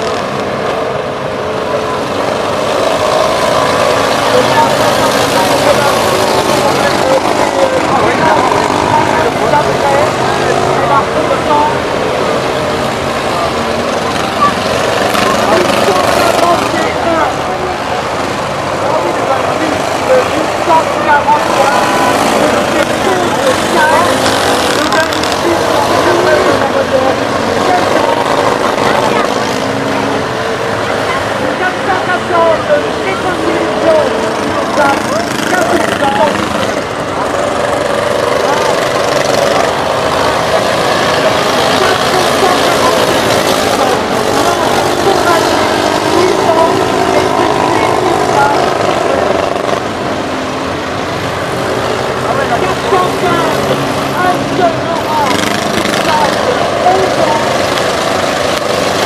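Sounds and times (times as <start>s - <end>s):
babble of voices: 0.0s - 59.0s
car engines idling and revving: 0.0s - 59.0s.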